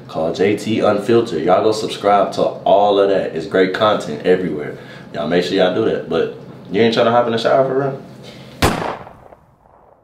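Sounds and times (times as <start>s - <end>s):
sharp bang: 8.6s - 10.0s.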